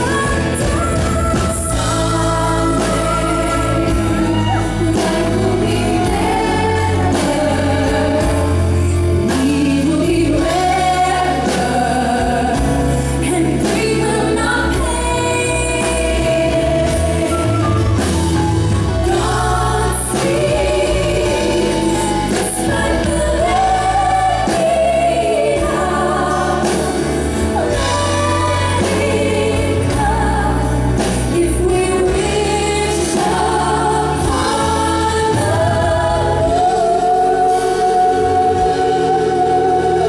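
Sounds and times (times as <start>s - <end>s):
choir singing: 0.0s - 40.0s
two women singing: 0.0s - 40.0s
flute: 0.2s - 6.9s, 16.8s - 24.8s.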